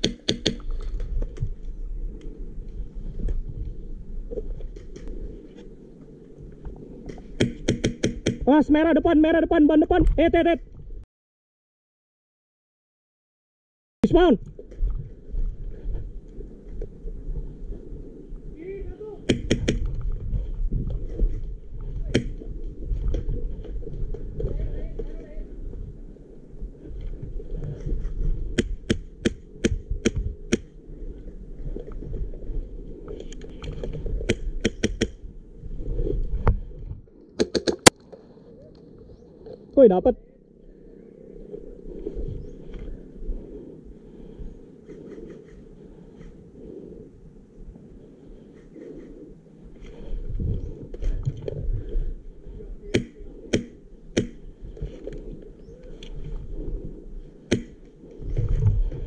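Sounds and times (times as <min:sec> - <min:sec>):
airsoft rifle shots: 0:00.0 - 0:00.7, 0:19.3 - 0:19.9
low rumble of movement: 0:00.6 - 0:08.4, 0:14.4 - 0:37.4, 0:38.0 - 0:59.0.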